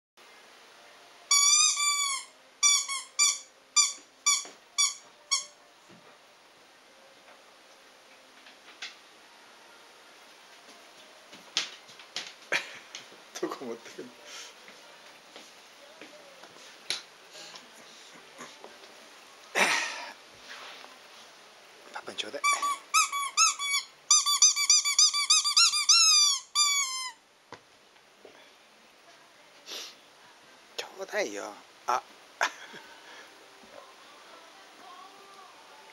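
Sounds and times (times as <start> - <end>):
rubber squeaky toy squeaking: 1.3 - 5.6, 22.4 - 27.2.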